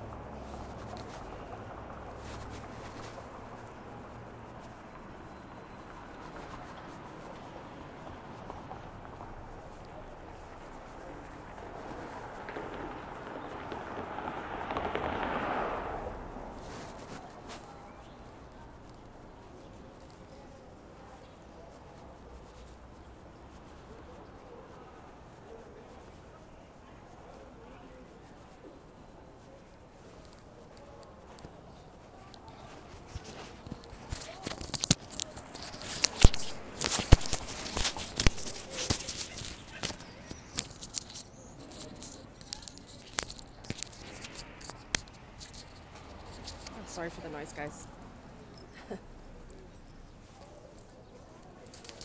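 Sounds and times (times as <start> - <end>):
crackling and rustling on microphone: 0.0 - 52.0
faint street background: 0.0 - 52.0.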